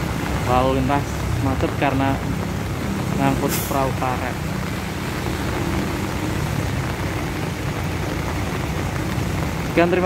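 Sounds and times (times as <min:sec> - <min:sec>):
constant hiss: 0:00.0 - 0:10.0.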